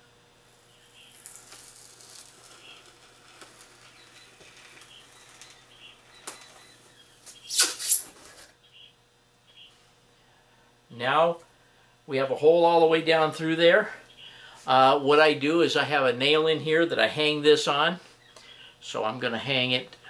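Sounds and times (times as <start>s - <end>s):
hot wire crackling through foam: 0.4s - 8.6s
loud brief rasps: 7.4s - 8.5s.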